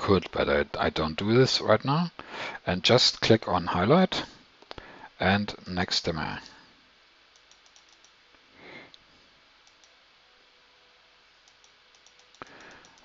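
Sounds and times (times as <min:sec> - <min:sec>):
computer mouse clicks: 0:07.3 - 0:08.2, 0:09.6 - 0:10.0, 0:11.4 - 0:13.0.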